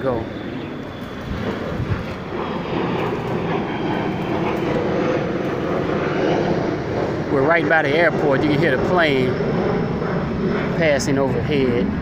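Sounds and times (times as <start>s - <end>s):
airplane passing overhead: 0.0s - 12.0s.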